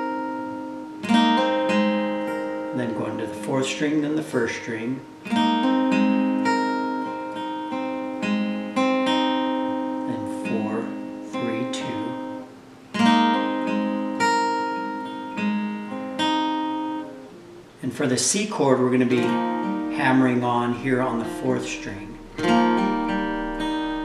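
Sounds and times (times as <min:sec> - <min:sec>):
acoustic guitar picking: 0:00.0 - 0:24.0.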